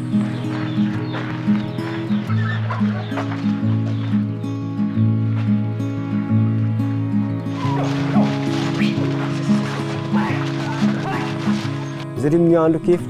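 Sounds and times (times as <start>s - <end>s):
chickens clucking: 0.0s - 4.4s, 7.6s - 12.1s
slow background music: 0.0s - 13.0s.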